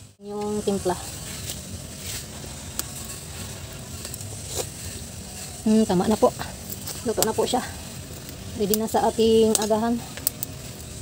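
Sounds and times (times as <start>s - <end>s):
wood fire crackling: 0.0s - 11.0s.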